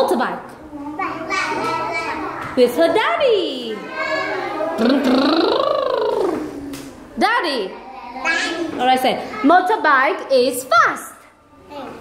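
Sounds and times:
child imitating motorbike engine: 4.7s - 6.5s.

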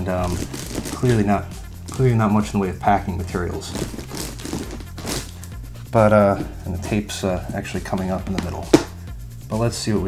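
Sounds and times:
hand rustling cardboard box: 0.0s - 5.4s.

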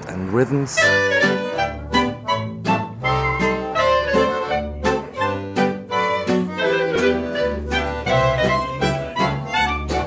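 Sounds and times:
low bass notes: 0.0s - 10.0s
held melody line: 0.8s - 10.0s.

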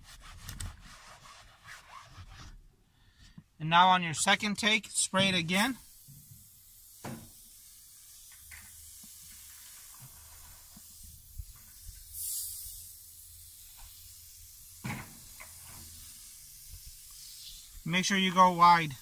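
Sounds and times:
aerosol can spraying hiss: 5.0s - 19.0s.

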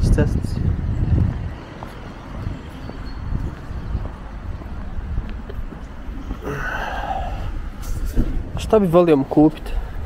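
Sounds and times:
low street rumble: 0.0s - 10.0s
wind on microphone: 0.0s - 10.0s.

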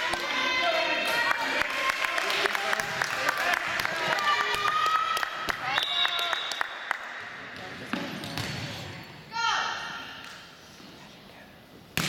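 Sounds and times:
ball bouncing on gym floor: 7.5s - 8.9s.

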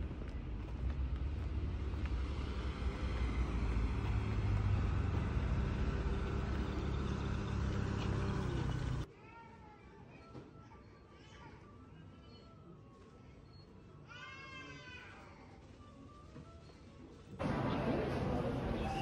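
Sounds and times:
engine-like hum: 0.0s - 9.1s, 17.4s - 19.0s
traffic rumble: 0.0s - 9.1s, 17.4s - 19.0s.

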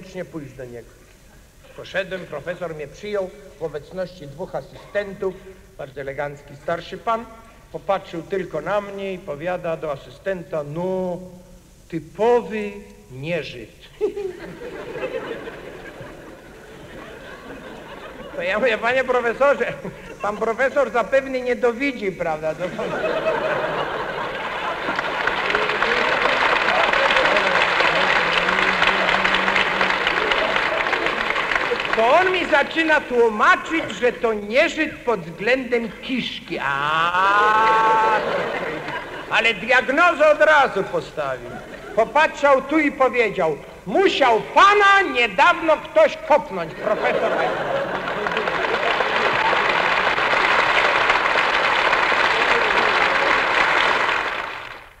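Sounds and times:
audience laughter: 13.9s - 20.8s, 22.5s - 32.4s, 37.2s - 39.6s, 41.4s - 42.2s, 46.6s - 50.4s
audience applauding: 22.7s - 33.1s, 37.1s - 39.4s, 46.9s - 55.0s.

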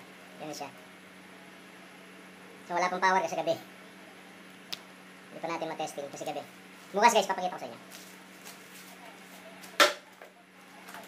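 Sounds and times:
plastic packaging rustling: 7.8s - 10.2s.

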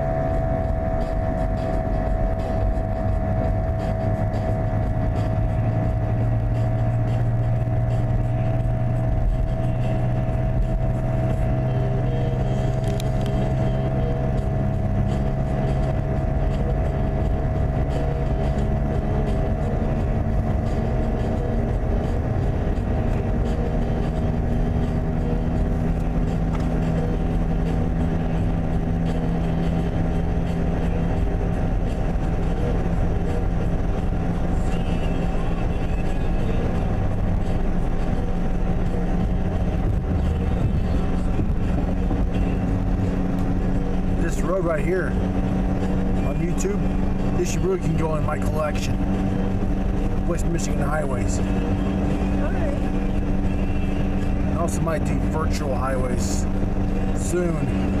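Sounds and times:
constant hum: 0.0s - 58.0s
engine and tyre drone: 0.0s - 58.0s.

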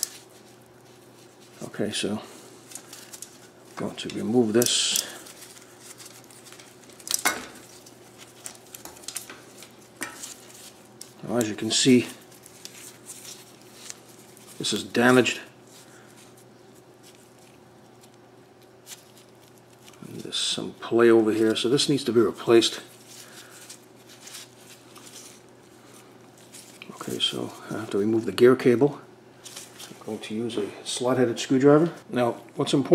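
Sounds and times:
faint handling noises: 0.0s - 32.9s
steady low hum: 0.0s - 32.9s.

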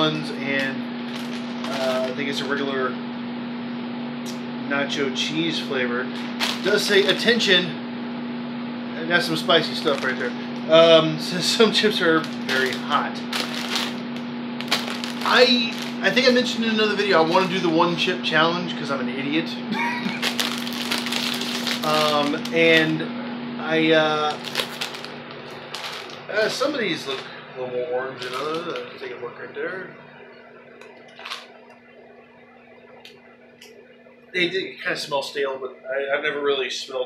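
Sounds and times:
low hum: 0.0s - 37.0s
chip bag crinkling: 0.6s - 2.7s, 6.1s - 7.4s, 9.4s - 10.7s, 11.6s - 17.6s, 19.9s - 23.0s, 24.2s - 27.3s, 28.1s - 29.1s, 31.1s - 31.5s.

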